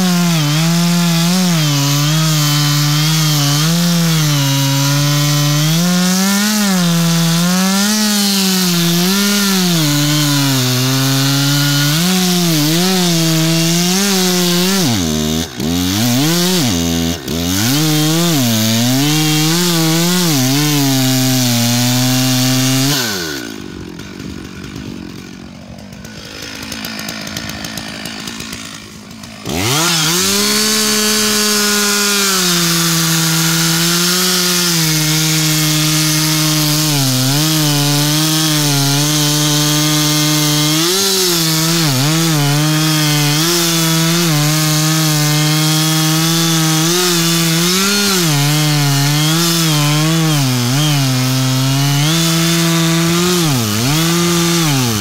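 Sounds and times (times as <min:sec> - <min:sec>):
chainsaw sawing wood: 0:00.0 - 0:55.0.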